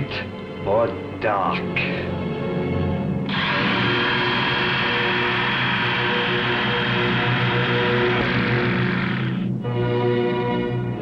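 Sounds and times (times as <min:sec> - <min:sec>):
electric carving knife running: 0:03.3 - 0:09.5
low hum: 0:03.3 - 0:09.7.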